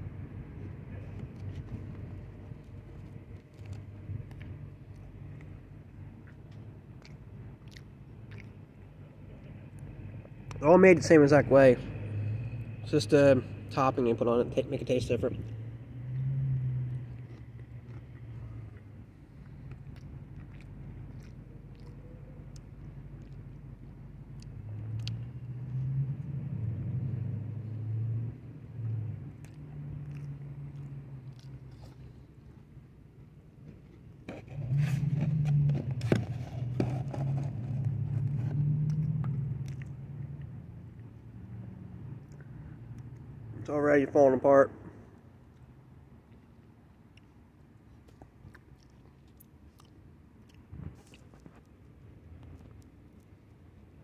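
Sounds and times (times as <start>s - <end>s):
person chewing a cookie: 0.4s - 10.6s, 15.3s - 43.4s, 45.2s - 54.0s.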